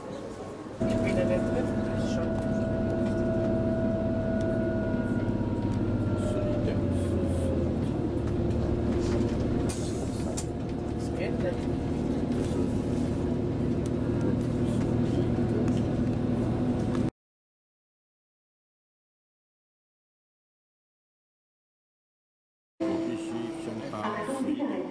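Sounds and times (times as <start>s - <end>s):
high whine: 0.8s - 10.8s
low tonal hum: 0.8s - 17.1s
train cabin rumble: 0.8s - 17.1s.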